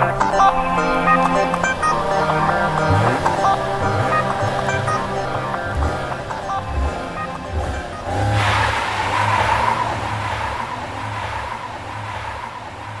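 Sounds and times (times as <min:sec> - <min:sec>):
car accelerating away: 0:00.0 - 0:13.0
music with bass beat: 0:00.0 - 0:13.0
tyres squealing: 0:00.0 - 0:13.0.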